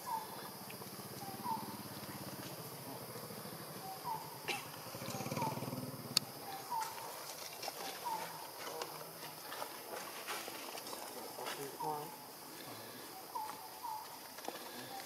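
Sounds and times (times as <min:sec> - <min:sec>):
monkey grunting: 0:01.4 - 0:06.1.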